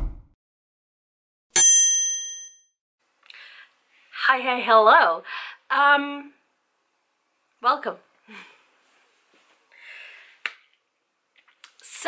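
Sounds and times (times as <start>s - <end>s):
bright bell-like ding: 1.6s - 2.6s.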